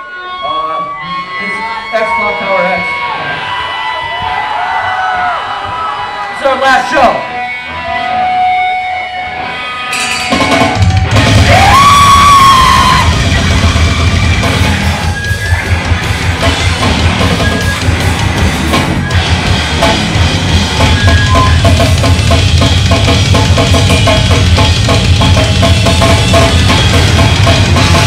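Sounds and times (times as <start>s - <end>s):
electric guitar: 7.2s - 28.0s
drum kit: 9.9s - 28.0s.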